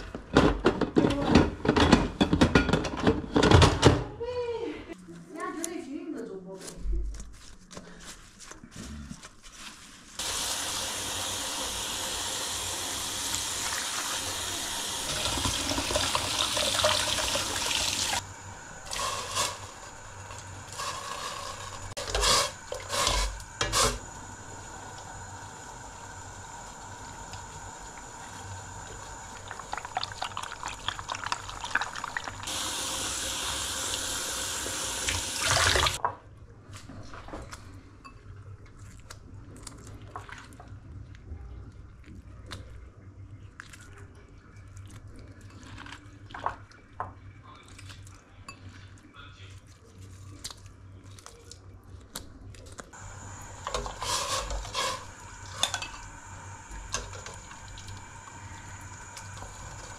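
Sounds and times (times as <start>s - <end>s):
tap water running into pot: 10.2s - 18.2s, 26.4s - 36.0s, 53.0s - 59.9s.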